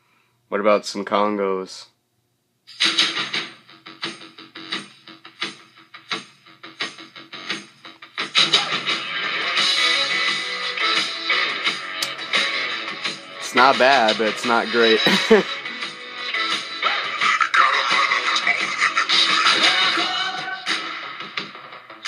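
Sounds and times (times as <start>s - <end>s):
rock song through small speakers: 2.7s - 22.0s.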